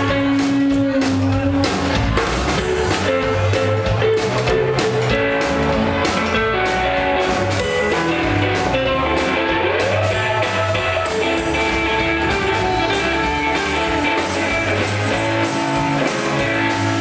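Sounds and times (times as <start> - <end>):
drum kit: 0.0 - 17.0
electric guitar lines: 0.0 - 17.0
upright double bass: 0.0 - 17.0.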